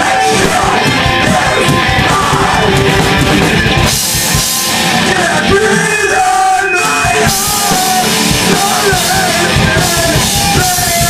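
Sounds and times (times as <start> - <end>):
electric guitars: 0.0 - 11.0.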